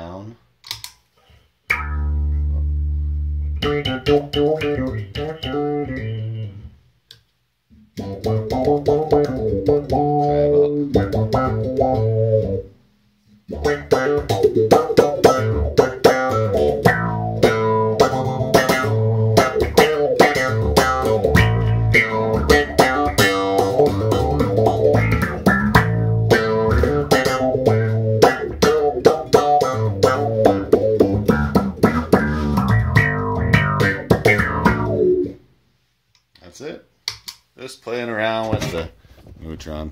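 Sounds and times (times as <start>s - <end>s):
filtered electric bass guitar: 1.7s - 6.8s, 7.9s - 12.8s, 13.4s - 35.4s.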